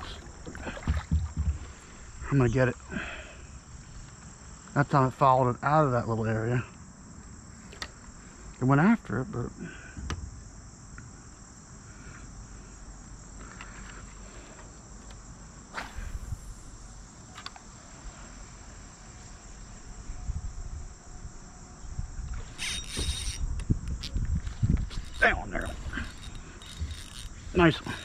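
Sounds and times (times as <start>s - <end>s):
high-pitched insect chorus: 0.0s - 28.0s.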